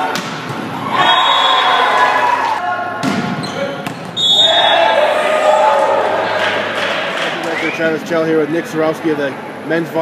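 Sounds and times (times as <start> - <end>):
people shouting in gymnasium: 0.7 - 7.1.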